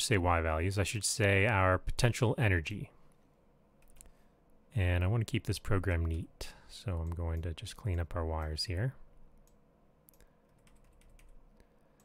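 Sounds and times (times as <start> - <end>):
keyboard and mouse clicks: 3.8 - 4.1, 9.4 - 11.4.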